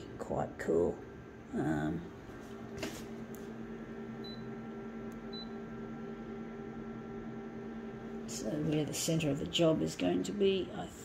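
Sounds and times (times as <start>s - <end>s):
copier electrical hum: 0.0s - 11.0s.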